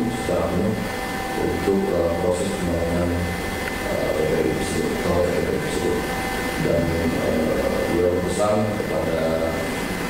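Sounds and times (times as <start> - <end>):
background hiss and hum: 0.0 - 10.0.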